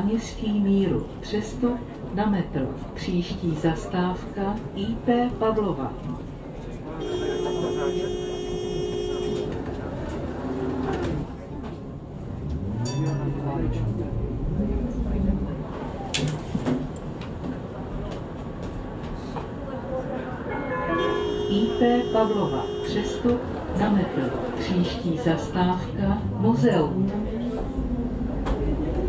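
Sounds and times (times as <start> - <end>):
tram running noise: 0.0 - 29.0
door warning tone: 7.0 - 9.6, 21.0 - 23.3
tram motors whining: 21.0 - 23.6.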